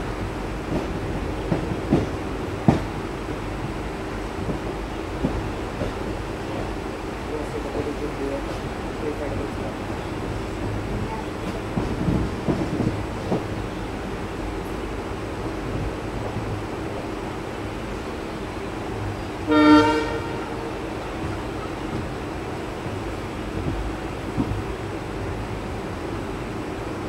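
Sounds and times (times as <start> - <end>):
passenger train running on track: 0.0 - 27.0
locomotive horn blast: 19.4 - 20.8.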